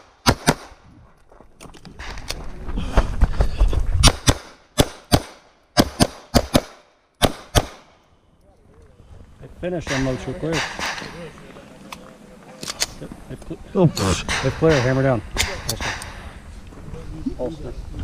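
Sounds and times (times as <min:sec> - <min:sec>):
pistol shots in pairs: 0:00.0 - 0:00.8, 0:04.0 - 0:08.0.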